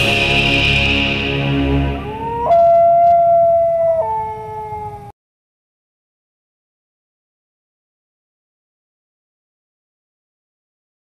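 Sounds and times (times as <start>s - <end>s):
long howling cry: 1.7s - 5.2s.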